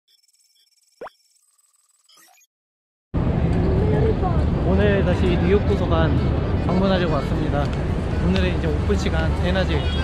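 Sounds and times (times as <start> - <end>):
city street noise: 3.2 - 10.0.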